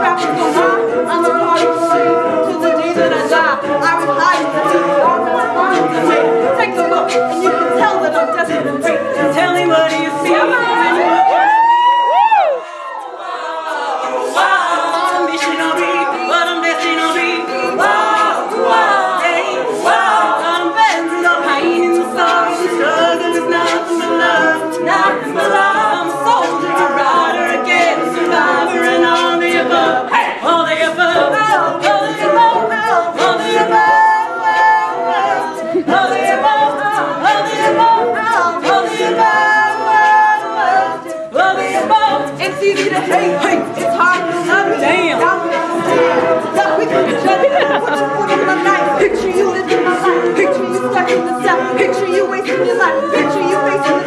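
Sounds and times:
a cappella group singing chords: 0.0 - 54.0
vocal percussion beat: 0.0 - 54.0
woman singing lead: 0.0 - 54.0.

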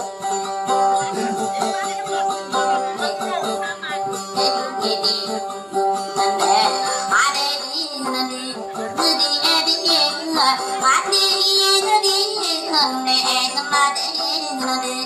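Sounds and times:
instrumental accompaniment: 0.0 - 15.0
person singing wavering phrases: 0.9 - 15.0.

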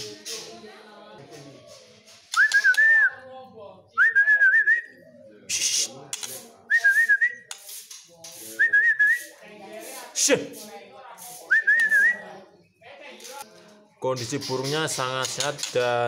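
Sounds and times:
faint voices: 0.0 - 16.0.

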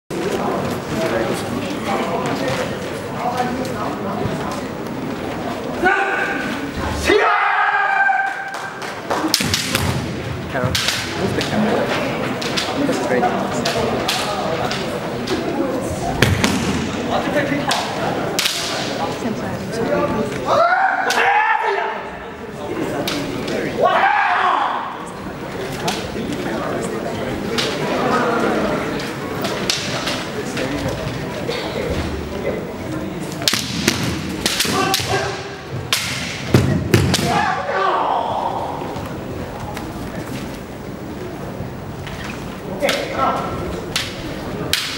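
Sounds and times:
bamboo swords clacking: 10.6 - 11.6, 17.7 - 19.0, 29.0 - 30.7, 33.3 - 37.5, 42.8 - 44.9
fighters shouting: 20.5 - 22.0, 23.8 - 25.0, 34.6 - 35.6, 37.2 - 38.9.

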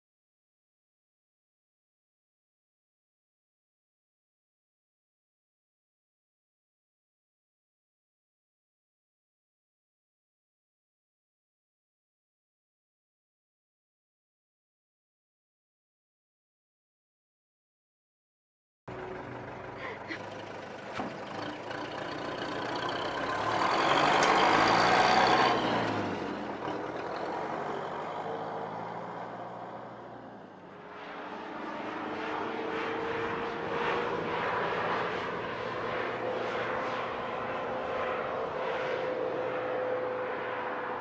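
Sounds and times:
engine running steadily: 18.9 - 41.0
vehicle passing close by: 20.1 - 41.0.

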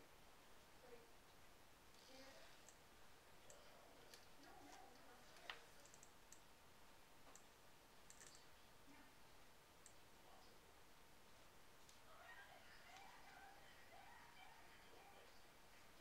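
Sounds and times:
faint small clicks: 7.3 - 8.5.

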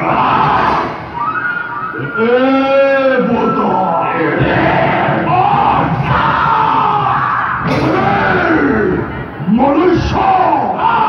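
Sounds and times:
actors' drawn-out theatrical cries: 0.0 - 11.0.

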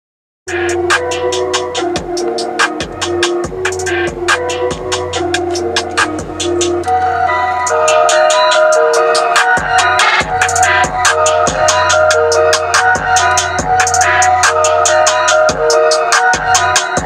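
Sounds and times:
electronic music in a car: 0.5 - 17.0.

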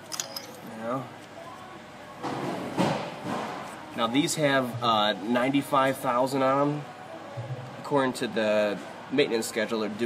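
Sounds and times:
metal tools scraping and knocking: 0.0 - 0.7.

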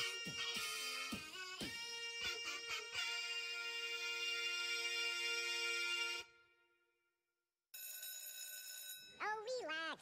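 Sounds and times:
bell ringing: 7.8 - 9.3.

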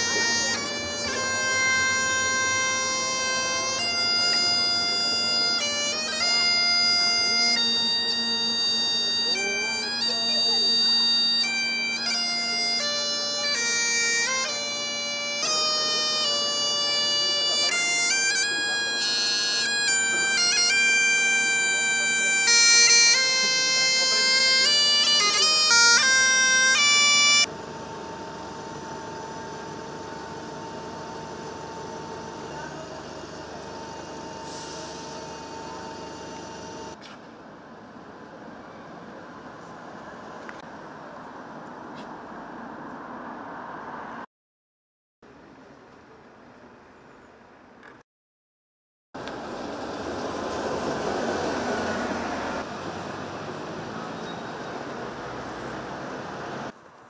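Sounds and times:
bagpipe playing a tune: 0.0 - 37.0
city street traffic: 0.0 - 44.3, 45.3 - 48.0, 49.2 - 57.0.

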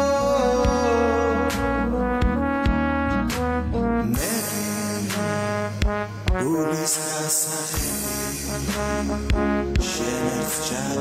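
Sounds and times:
instrumental pop music: 0.0 - 11.0.

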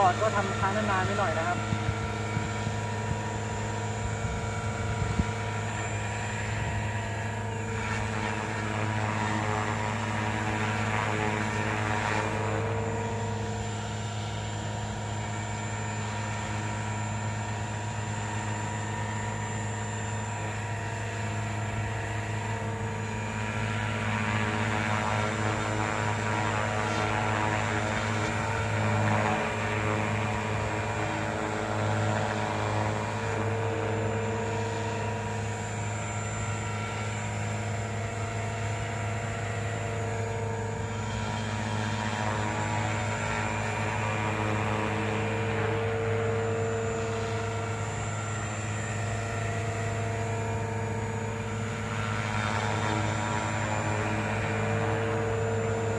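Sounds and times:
rc helicopter hovering: 0.0 - 55.9.

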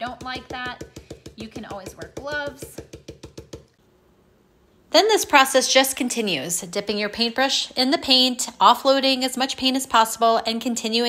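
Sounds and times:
stencil brush tapping: 0.0 - 3.8.

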